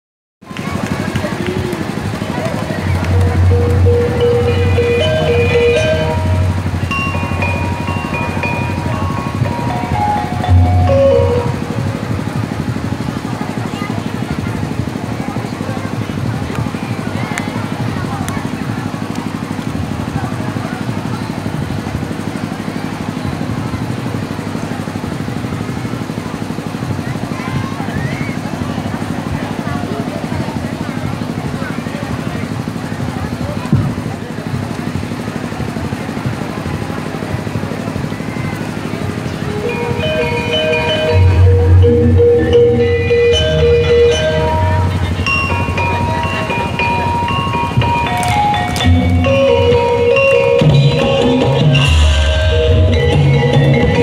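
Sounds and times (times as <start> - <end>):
crowd chatter: 0.4 - 54.0
low hum: 1.5 - 13.6, 38.7 - 47.8
music over loudspeakers: 2.7 - 12.1, 39.5 - 54.0.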